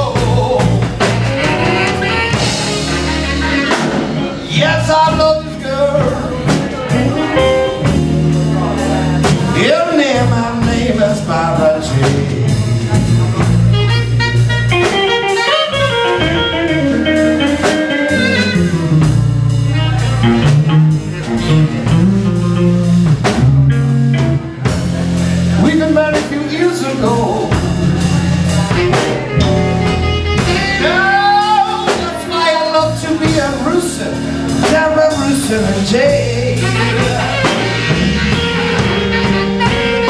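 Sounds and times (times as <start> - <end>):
saxophone: 0.0 - 10.2, 11.6 - 25.0, 25.6 - 40.0
man singing: 0.0 - 14.4, 24.2 - 40.0
drum kit: 0.0 - 40.0
electric bass: 0.0 - 40.0
electric guitar: 0.0 - 40.0.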